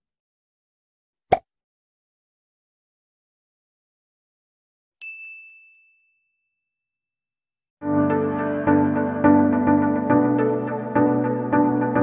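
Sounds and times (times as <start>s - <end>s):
bright bell ding: 5.0s - 6.7s.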